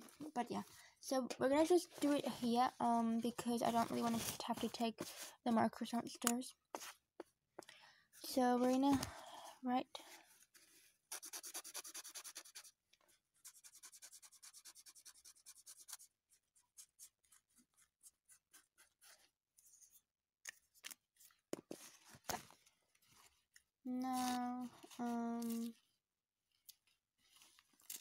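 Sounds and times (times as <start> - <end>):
marker scribbling on paper: 11.1 - 12.8, 13.4 - 19.2.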